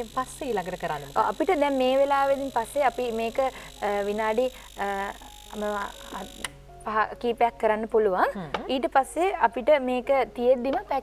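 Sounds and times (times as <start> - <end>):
woman speaking: 0.0 - 6.3.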